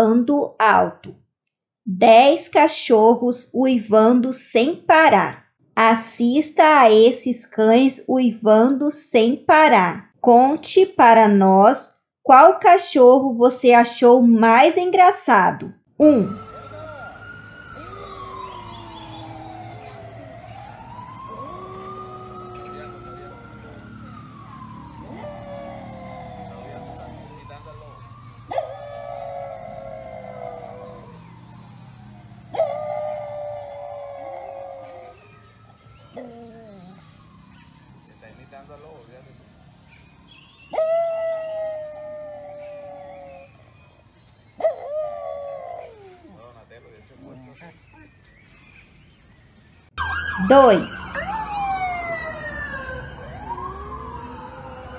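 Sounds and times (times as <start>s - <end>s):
siren wailing: 16.0s - 48.1s, 50.0s - 54.9s
dog howling: 16.4s - 37.7s, 40.7s - 43.9s, 44.6s - 46.6s, 47.2s - 48.2s.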